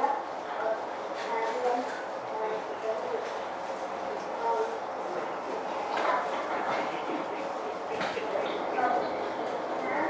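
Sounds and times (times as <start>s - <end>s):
room babble: 0.0s - 10.0s
high-pitched voices chattering: 4.4s - 10.0s.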